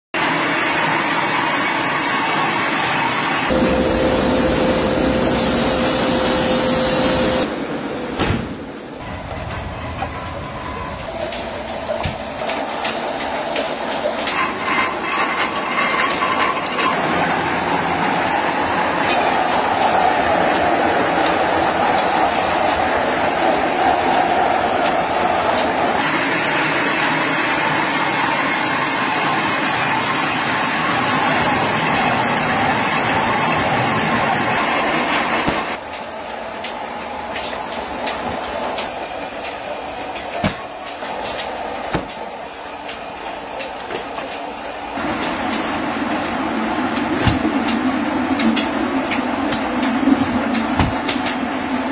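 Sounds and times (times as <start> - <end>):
veneer peeling lathe running: 0.4 - 7.5.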